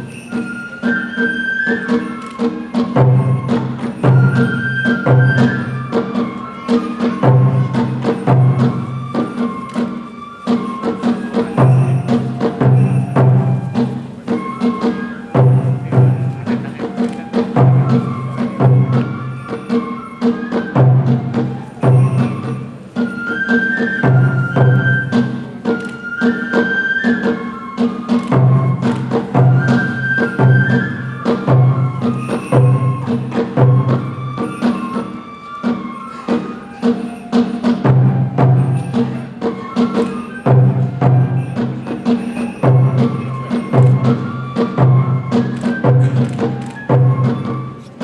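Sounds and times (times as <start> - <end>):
bamboo flute melody: 0.0 - 48.0
sharp clacking percussion: 0.0 - 48.0
taiko drum beats: 0.0 - 48.0.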